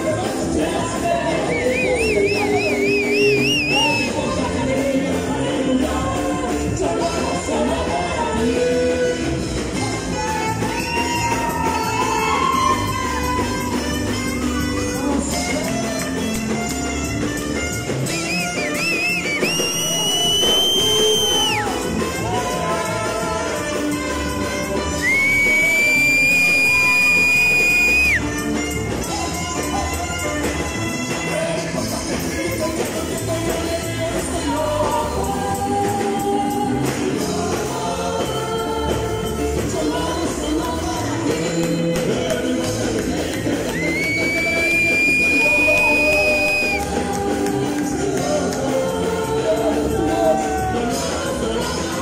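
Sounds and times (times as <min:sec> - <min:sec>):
worship band music: 0:00.0 - 0:52.0
high whistle-like tone: 0:01.4 - 0:04.2, 0:18.1 - 0:21.8, 0:25.0 - 0:28.3, 0:43.7 - 0:46.9
trumpet: 0:08.5 - 0:33.2, 0:43.9 - 0:47.3
alto saxophone: 0:10.0 - 0:33.1.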